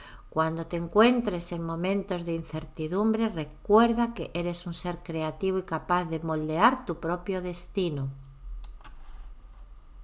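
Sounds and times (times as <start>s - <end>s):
low steady hum: 0.0s - 10.0s
woman speaking: 0.3s - 8.3s.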